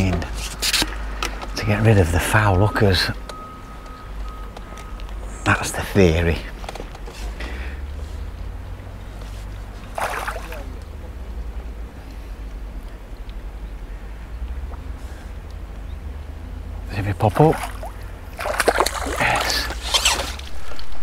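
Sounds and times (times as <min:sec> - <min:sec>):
fish splashing at surface: 0:09.9 - 0:10.8, 0:17.5 - 0:20.4.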